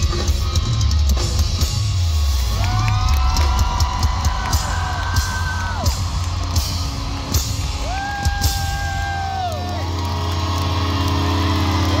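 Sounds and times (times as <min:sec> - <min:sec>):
electric guitars droning: 0:00.0 - 0:12.0.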